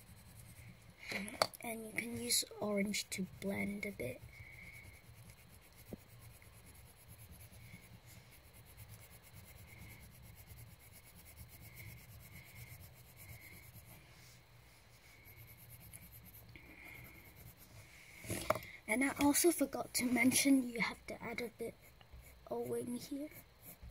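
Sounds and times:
colouring pencil rubbing on paper: 0:00.0 - 0:23.9.

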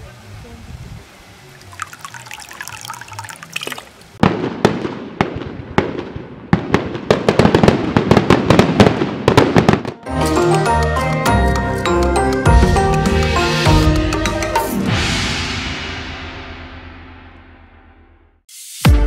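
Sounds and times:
fireworks bangs and crackles: 0:04.2 - 0:10.1
music with a steady beat: 0:10.1 - 0:15.0, 0:18.6 - 0:19.0.

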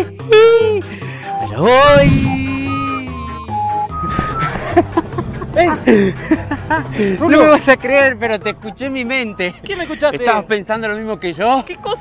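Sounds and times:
men exclaiming and laughing: 0:00.0 - 0:01.0, 0:04.5 - 0:08.2
background music: 0:00.0 - 0:12.0.

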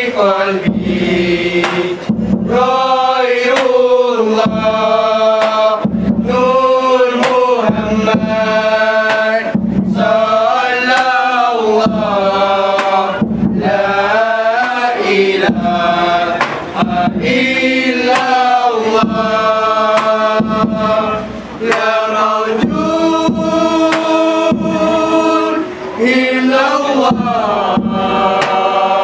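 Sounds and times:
men chanting in unison: 0:00.0 - 0:29.0.

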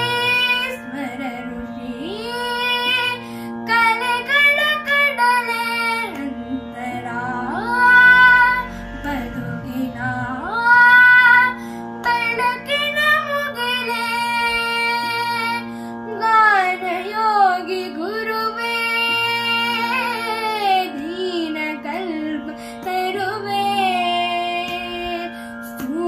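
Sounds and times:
boy singing: 0:00.0 - 0:26.0
steady drone: 0:00.0 - 0:26.0.

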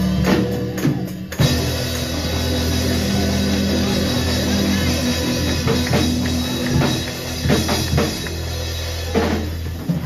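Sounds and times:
live band playing: 0:00.0 - 0:10.0
low bass notes: 0:00.0 - 0:10.0.

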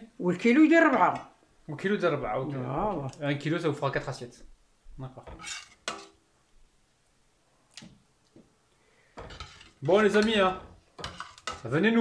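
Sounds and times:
metal ladle scraping a pot: 0:05.3 - 0:06.2, 0:09.2 - 0:11.8.

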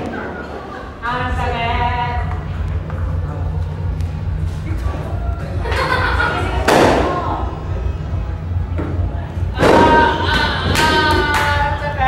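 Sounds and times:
background music with low beat: 0:01.1 - 0:12.0.

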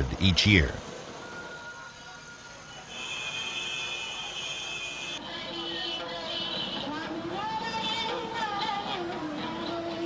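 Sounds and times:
faint street noise: 0:00.0 - 0:10.0.

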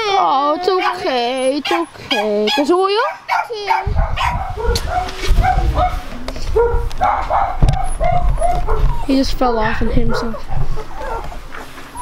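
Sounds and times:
dogs barking: 0:00.6 - 0:12.0
single thump: 0:07.6 - 0:08.3.

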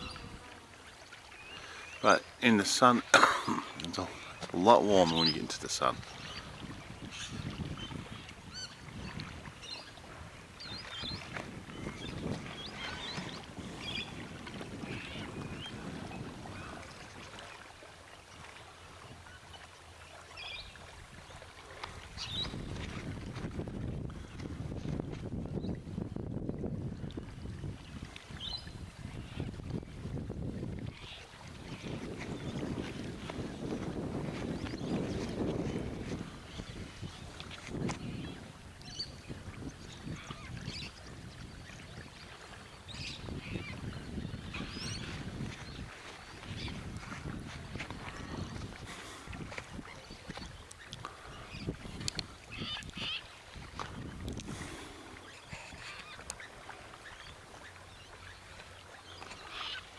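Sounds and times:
wind buffeting microphone: 0:00.0 - 0:00.6, 0:03.4 - 0:17.6, 0:20.4 - 0:58.1.

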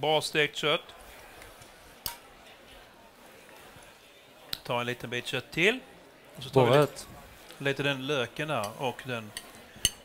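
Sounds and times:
low background noise: 0:00.0 - 0:10.0
cutlery clinking on porcelain plate: 0:08.6 - 0:10.0.

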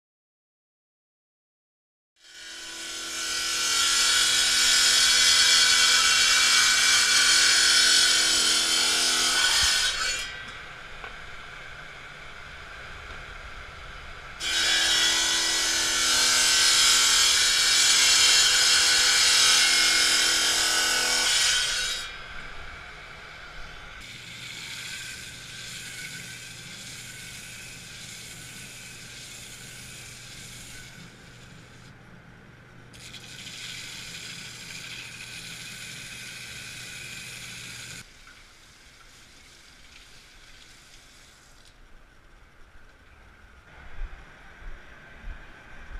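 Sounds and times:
saw blade grinding through glass: 0:24.0 - 0:31.8, 0:33.0 - 0:38.0
saw motor running: 0:24.0 - 0:31.9, 0:32.9 - 0:38.0
grinding wheel humming: 0:32.9 - 0:38.0.

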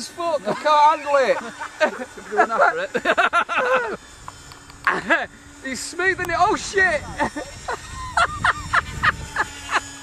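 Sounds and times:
faint steady hum: 0:00.0 - 0:10.0
men laughing: 0:00.2 - 0:04.2, 0:04.8 - 0:05.4, 0:07.0 - 0:10.0.

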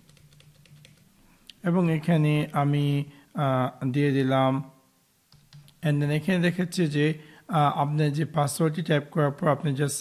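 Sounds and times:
light keyboard keystrokes: 0:00.0 - 0:01.0.

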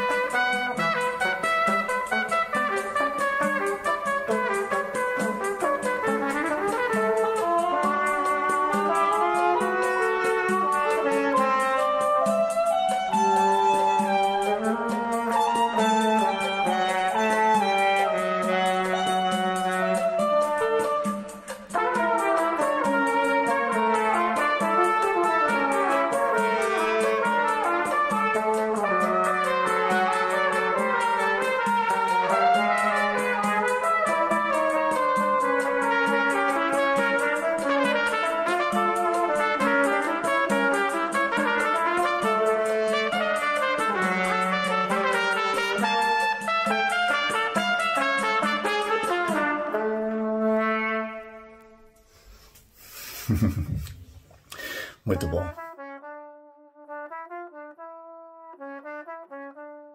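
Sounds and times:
trumpet ensemble playing: 0:00.0 - 0:52.1, 0:55.0 - 0:59.9.

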